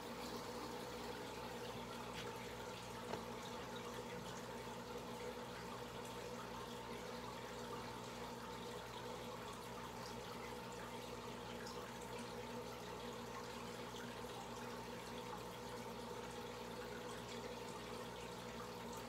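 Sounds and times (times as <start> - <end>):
aquarium aeration bubbling: 0.0 - 19.0
low steady hum: 0.0 - 19.0.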